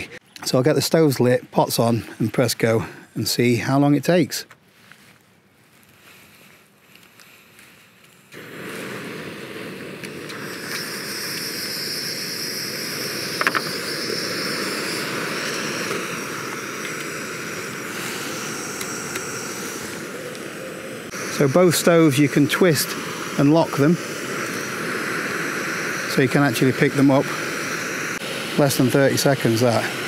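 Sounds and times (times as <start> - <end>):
gas stove burner hissing: 8.3 - 30.0.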